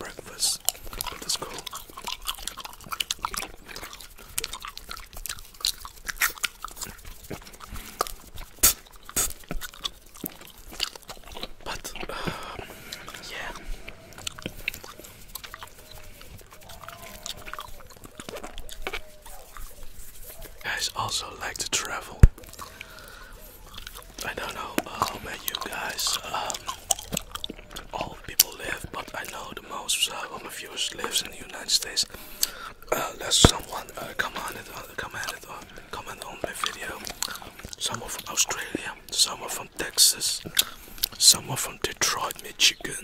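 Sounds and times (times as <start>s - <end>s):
wet mouth clicks and smacks: 0.0s - 43.0s.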